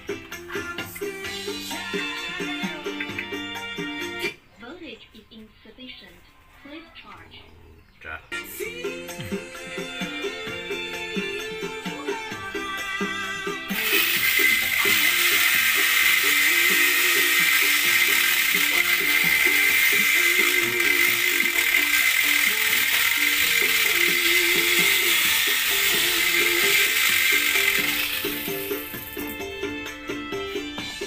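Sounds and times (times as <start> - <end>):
background music: 0.0 - 6.0, 7.3 - 31.0
die grinder whining: 10.9 - 29.7.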